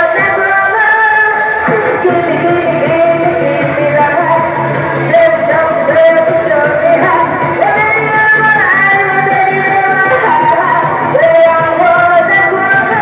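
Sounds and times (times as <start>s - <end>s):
amplified backing music: 0.0s - 13.0s
woman singing into a microphone: 0.0s - 13.0s.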